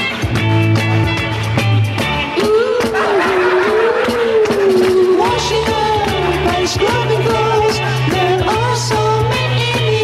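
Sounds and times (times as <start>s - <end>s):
person singing: 2.4s - 10.0s.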